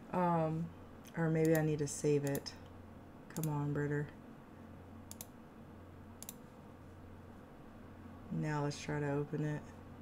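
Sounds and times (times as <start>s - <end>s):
steady low hum: 0.0s - 10.0s
faint computer mouse clicks: 5.1s - 5.4s, 6.2s - 6.4s.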